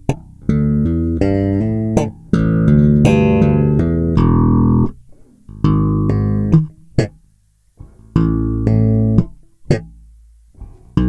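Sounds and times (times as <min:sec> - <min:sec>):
slap bass playing: 0:00.0 - 0:11.0.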